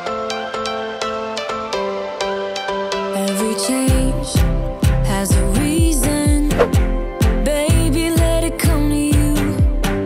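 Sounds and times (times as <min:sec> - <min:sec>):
upbeat pop music: 0:00.0 - 0:10.0.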